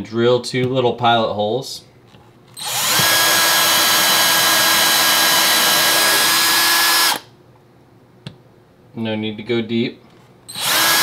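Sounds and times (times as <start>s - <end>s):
power drill boring into wood: 2.6s - 7.3s, 10.5s - 11.0s.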